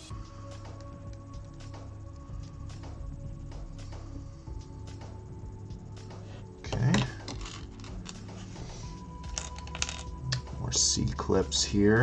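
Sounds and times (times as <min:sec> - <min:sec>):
quiet background music: 0:00.0 - 0:12.0
plastic bricks clicking and rattling: 0:06.8 - 0:08.2, 0:09.3 - 0:10.1.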